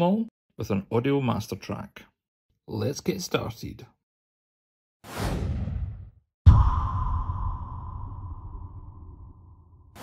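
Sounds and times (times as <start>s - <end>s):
falling whoosh: 5.2s - 10.0s
deep hit with low rumble: 6.5s - 9.8s.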